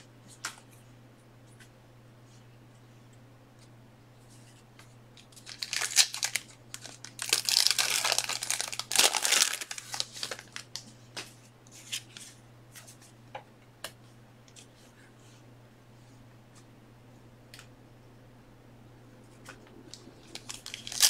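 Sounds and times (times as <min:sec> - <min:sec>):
plastic wrapping crinkling and tearing: 0:05.2 - 0:10.9, 0:19.9 - 0:21.0.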